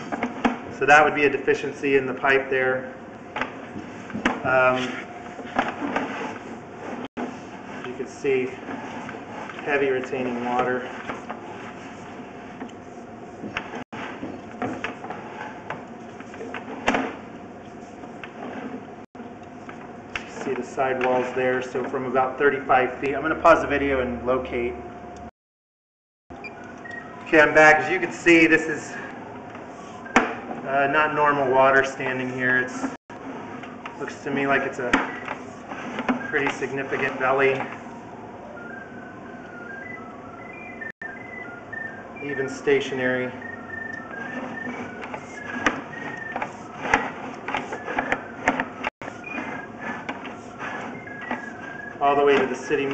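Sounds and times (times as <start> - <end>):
electronic tone melody: 38.6 - 42.5.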